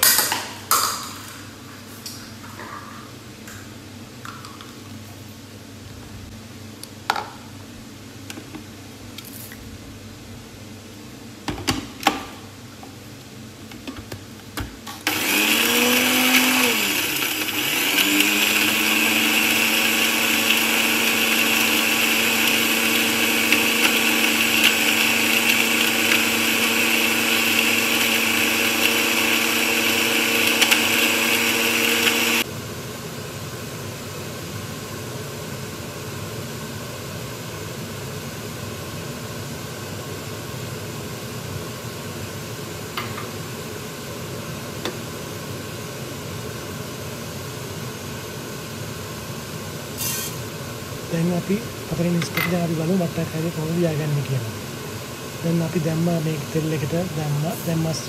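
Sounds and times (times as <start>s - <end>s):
blender grinding: 15.0s - 32.5s, 50.0s - 50.5s.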